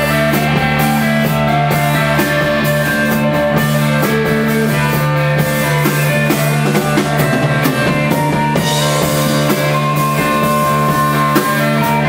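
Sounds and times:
drum kit and cymbal hits: 0:00.0 - 0:12.0
electric bass: 0:00.0 - 0:12.0
electric guitars: 0:00.0 - 0:12.0.

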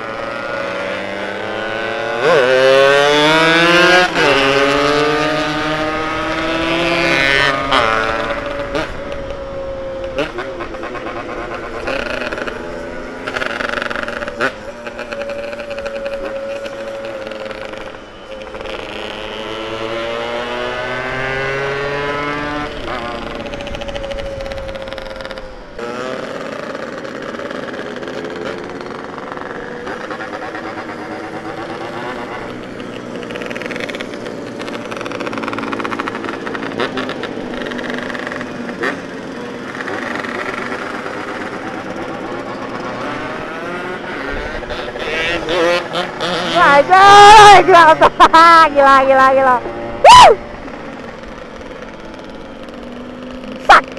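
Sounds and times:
motorcycle engine accelerating: 0:00.0 - 0:53.9.

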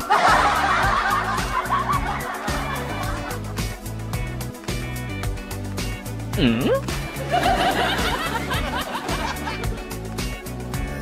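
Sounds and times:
people snickering laughter: 0:00.0 - 0:03.6, 0:06.4 - 0:09.8
background music: 0:00.0 - 0:11.0.

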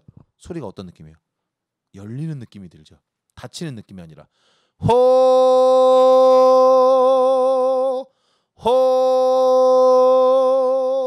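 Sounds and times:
man singing held vowels: 0:04.8 - 0:11.0.

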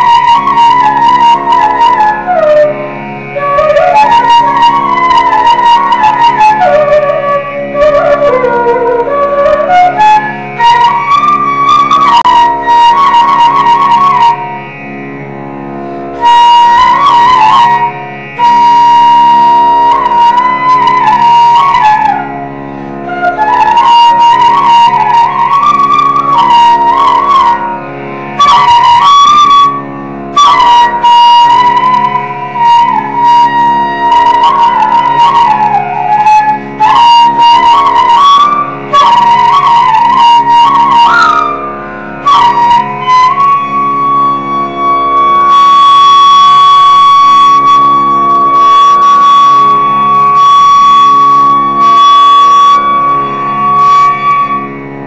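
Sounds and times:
bamboo flute melody: 0:00.0 - 0:55.0
steady drone: 0:00.0 - 0:55.0.

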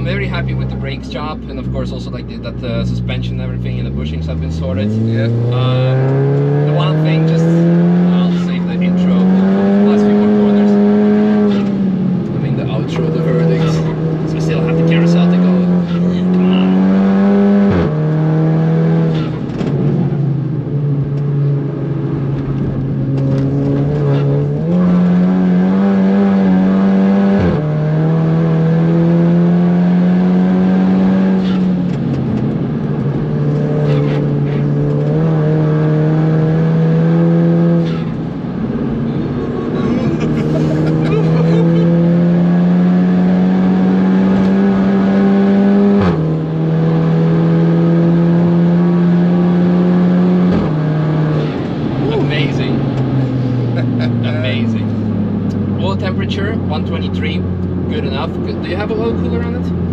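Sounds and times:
car engine revving at high revs: 0:00.0 - 0:59.9.

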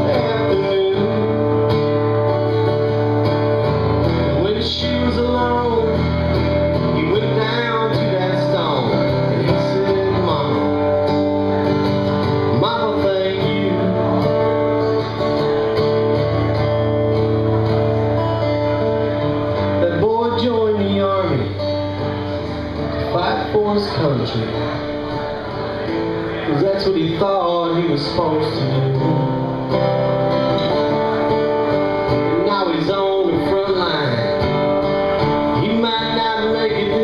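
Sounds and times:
man singing: 0:00.0 - 0:02.8, 0:04.2 - 0:15.5, 0:19.7 - 0:22.1, 0:23.0 - 0:24.8, 0:26.2 - 0:30.0, 0:32.1 - 0:37.0
acoustic guitar strumming chords: 0:00.0 - 0:37.0.

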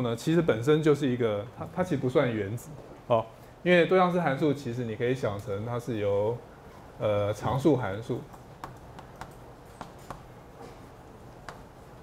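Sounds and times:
chalk tapping on blackboard: 0:08.6 - 0:10.3, 0:11.4 - 0:11.8.

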